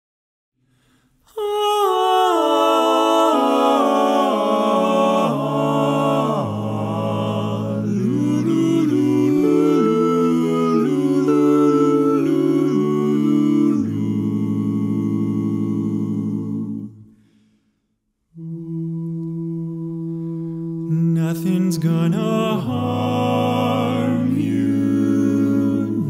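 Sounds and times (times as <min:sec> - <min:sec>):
male vocal quartet singing: 0:01.3 - 0:17.2, 0:18.4 - 0:26.0.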